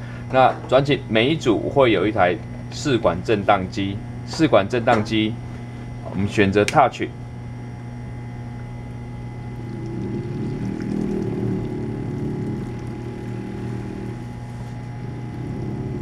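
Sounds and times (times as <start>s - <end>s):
vortex mixer motor hum: 7.1s - 16.0s.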